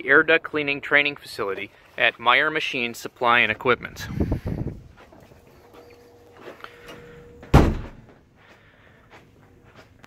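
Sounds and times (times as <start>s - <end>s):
door shutting with a thud: 7.4s - 8.2s.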